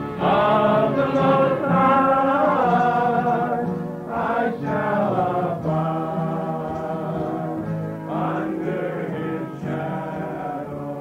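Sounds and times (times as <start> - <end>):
choir singing long notes: 0.0 - 11.0.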